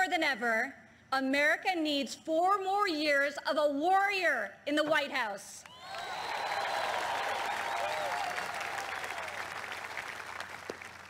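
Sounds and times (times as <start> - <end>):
shouts and whoops: 5.7 - 9.5
audience applauding and cheering: 5.7 - 11.0.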